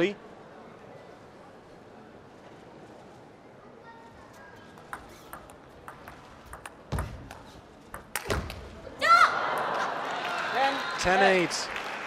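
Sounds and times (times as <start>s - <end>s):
indoor sports hall background noise: 0.0s - 12.0s
man commentating: 11.0s - 11.7s.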